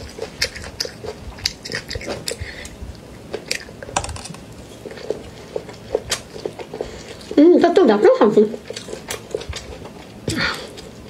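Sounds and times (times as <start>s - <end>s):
chewing green beans: 0.0s - 11.0s.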